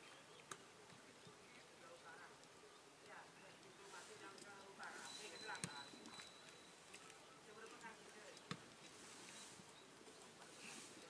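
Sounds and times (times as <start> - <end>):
distant people talking: 0.0 - 11.0
faint steady high tone: 4.6 - 7.7.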